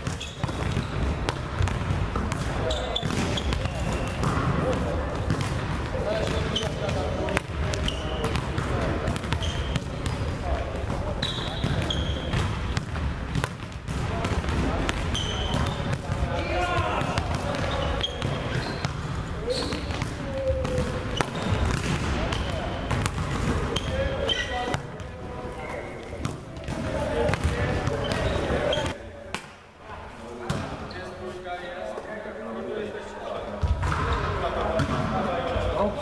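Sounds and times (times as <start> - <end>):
volleyballs being hit: 0.0 - 25.2, 26.1 - 29.6.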